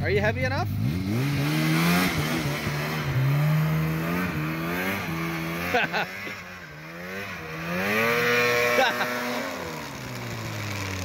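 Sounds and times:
snowmobile engine revving: 0.0 - 11.0.

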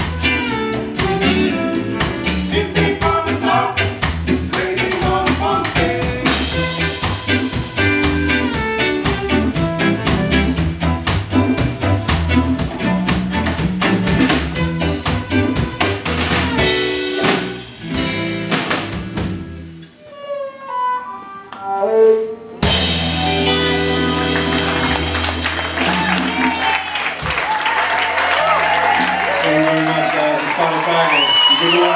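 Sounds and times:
live reggae band playing: 0.0 - 31.9
bowed viola: 20.0 - 24.5.

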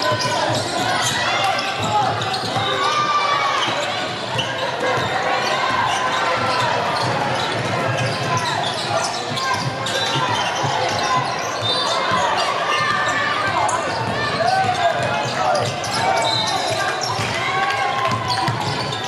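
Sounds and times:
players and spectators voices: 0.0 - 19.0.

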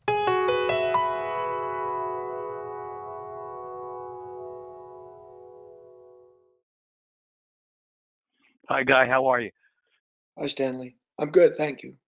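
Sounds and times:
electric piano music: 0.0 - 6.6.

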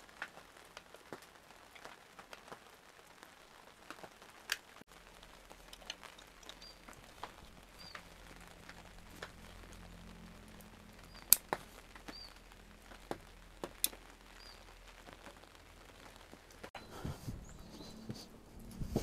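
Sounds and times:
small bird chirping: 5.7 - 10.0, 10.6 - 15.6, 16.8 - 18.3
sharp taps and clicks: 11.1 - 15.4.

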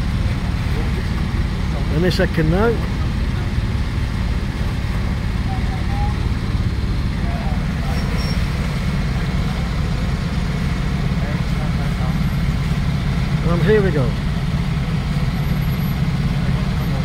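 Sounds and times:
diesel engine idling: 0.0 - 17.0.

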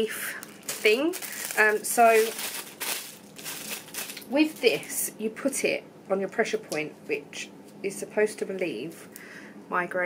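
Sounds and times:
plastic packaging crinkling: 0.0 - 5.0.

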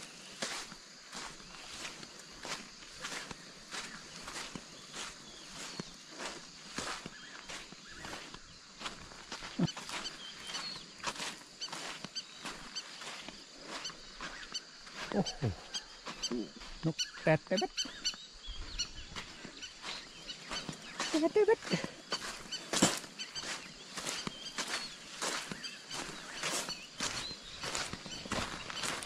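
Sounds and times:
footsteps crunching on sand: 0.0 - 29.0.

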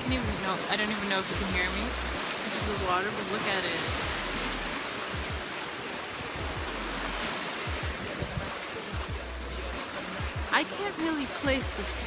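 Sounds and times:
waves washing on rocky shore: 0.0 - 12.0
wind buffeting microphone: 6.2 - 9.5.

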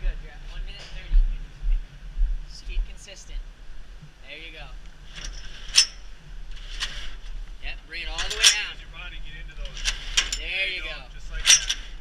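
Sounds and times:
rope rasping on ladder: 5.0 - 7.4, 8.1 - 8.8, 9.6 - 10.6, 11.2 - 12.0
metal ladder clanks: 5.1 - 6.1, 8.1 - 8.8, 9.6 - 10.6, 11.3 - 12.0.

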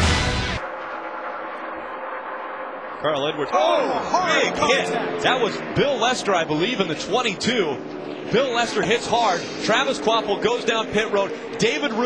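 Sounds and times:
racing truck engines droning: 0.0 - 12.0.

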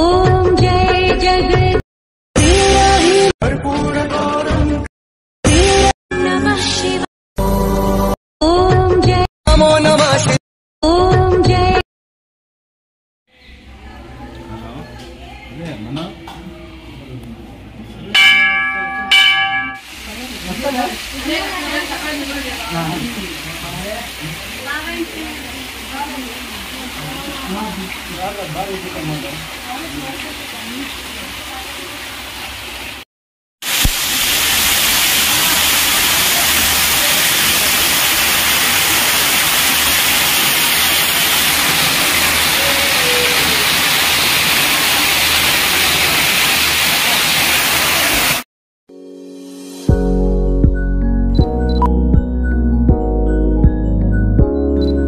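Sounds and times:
temple bell ringing: 18.2 - 19.9
water gushing and splashing: 19.8 - 33.0, 33.6 - 48.5.

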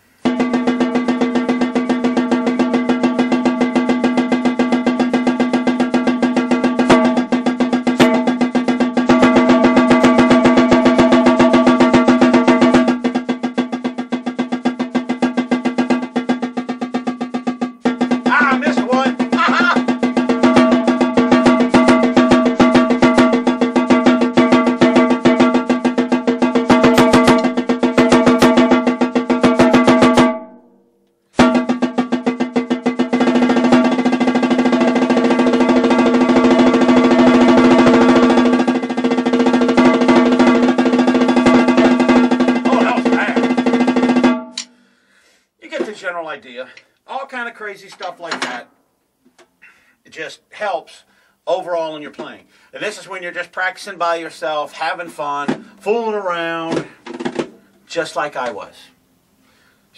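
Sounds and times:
marching snare drum strokes: 0.0 - 30.6, 31.3 - 44.8, 54.7 - 57.7.

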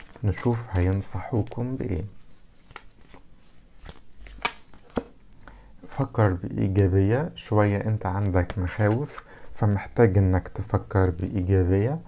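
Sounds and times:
cards rustling: 0.0 - 5.1.

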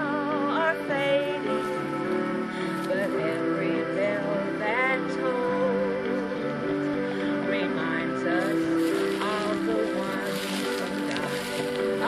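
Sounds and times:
recorded instrumental backing: 0.0 - 12.0
woman singing: 0.0 - 12.0.

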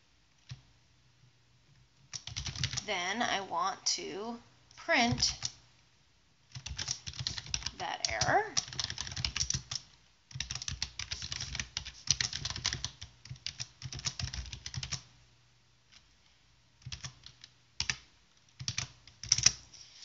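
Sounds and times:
typing on computer keyboard: 0.4 - 0.6, 2.0 - 2.8, 5.3 - 5.6, 6.5 - 15.1, 16.8 - 18.0, 18.6 - 19.6.

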